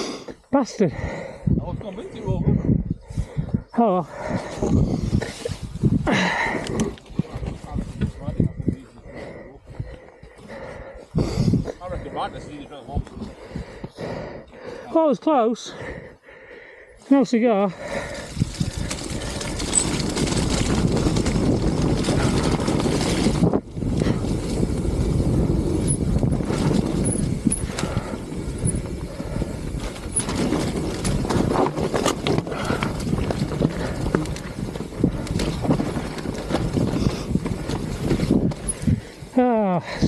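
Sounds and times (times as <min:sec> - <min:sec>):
wind noise on microphone: 0:00.9 - 0:14.4, 0:17.8 - 0:40.0
tyre roar on dirt: 0:18.1 - 0:39.3
bike knocking and rattling: 0:18.2 - 0:40.0.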